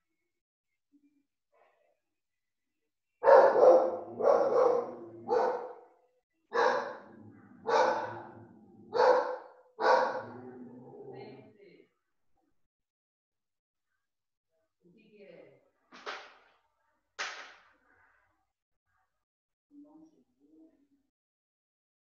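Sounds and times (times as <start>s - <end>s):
dog barking: 3.2s - 5.9s, 6.5s - 10.4s.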